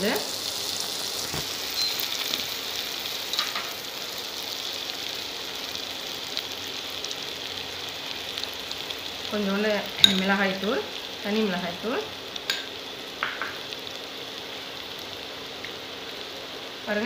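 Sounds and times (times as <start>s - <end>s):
vegetables sizzling in hot oil: 0.0s - 17.0s.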